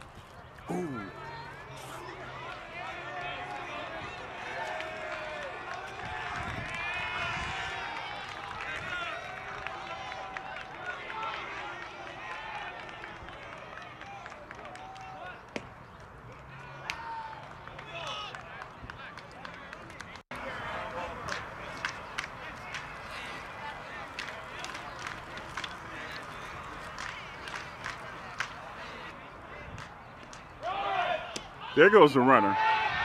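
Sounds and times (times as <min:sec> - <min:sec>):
voices calling and chattering: 0:00.0 - 0:06.8, 0:16.3 - 0:32.5.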